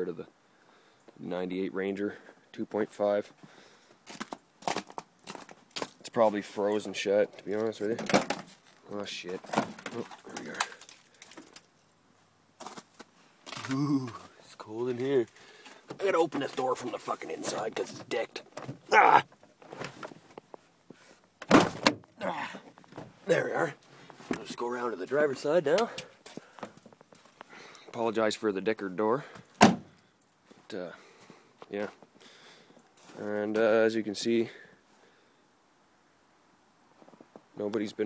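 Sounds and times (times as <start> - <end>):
car door clunks: 29.6 - 29.9.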